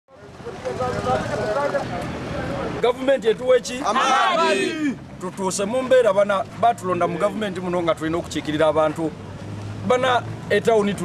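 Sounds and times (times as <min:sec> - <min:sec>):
people talking: 0:00.1 - 0:09.2, 0:09.9 - 0:11.0.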